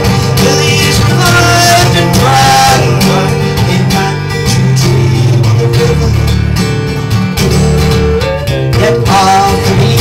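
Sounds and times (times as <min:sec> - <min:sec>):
acoustic guitars strummed: 0:00.0 - 0:10.0.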